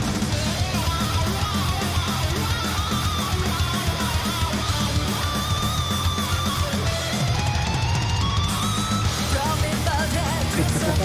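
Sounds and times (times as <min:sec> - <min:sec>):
chugging electric guitar riff: 0:00.0 - 0:11.0
drums: 0:00.0 - 0:11.0
sustained guitar line: 0:00.0 - 0:11.0.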